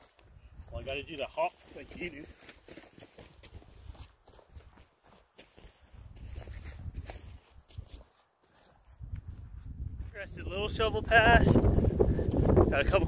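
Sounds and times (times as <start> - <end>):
footsteps on dirt trail: 0.0 - 13.0.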